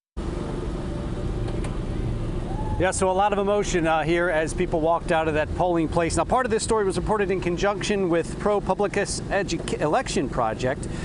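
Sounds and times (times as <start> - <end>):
road traffic rumble: 0.2 - 11.0.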